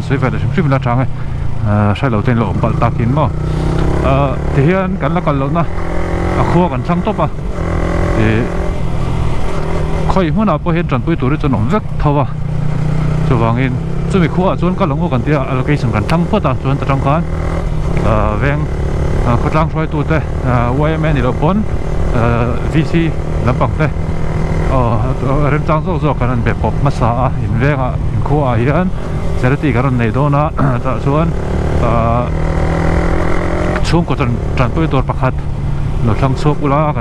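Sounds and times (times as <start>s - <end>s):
person talking: 0.0s - 3.4s, 4.0s - 5.7s, 6.4s - 7.3s, 8.1s - 8.6s, 13.3s - 17.3s, 18.0s - 18.7s, 24.7s - 32.4s, 36.0s - 37.0s
motorcycle engine running: 0.0s - 37.0s.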